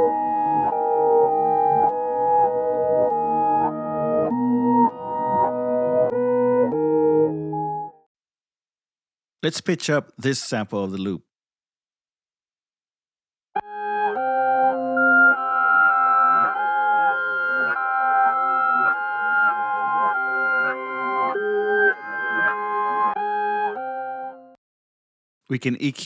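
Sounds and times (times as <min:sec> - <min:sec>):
reversed piano chords loop: 0:00.0 - 0:08.0, 0:13.6 - 0:24.4.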